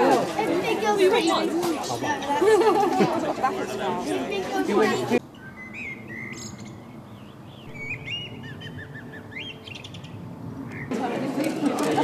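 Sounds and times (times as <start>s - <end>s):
small birds chirping: 5.2s - 11.0s.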